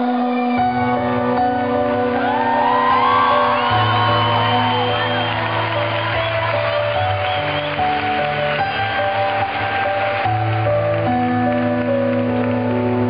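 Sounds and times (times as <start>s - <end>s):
audience whoops: 2.0s - 10.6s.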